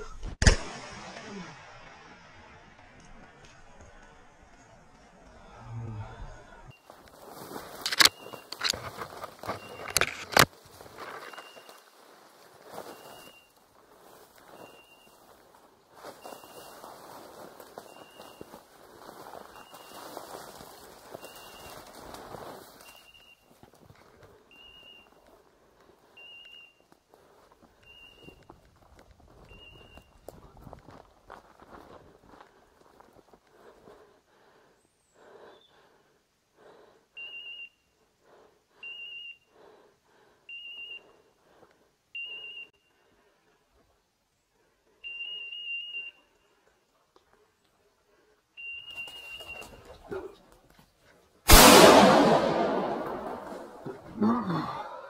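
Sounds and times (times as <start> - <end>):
rustling through dense brush: 6.8 - 25.4
footsteps crunching dry leaves: 6.9 - 9.8.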